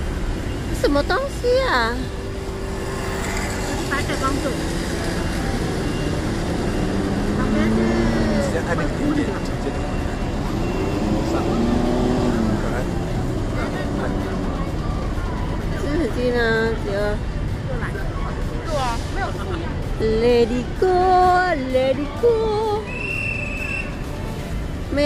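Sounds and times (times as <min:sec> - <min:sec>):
low rumble of city traffic: 0:00.0 - 0:25.0
vehicles passing: 0:00.0 - 0:25.0.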